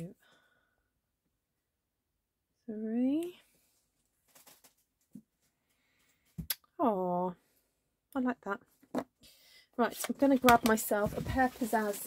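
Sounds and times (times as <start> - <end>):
faint rustles and light clicks: 3.7 - 6.2.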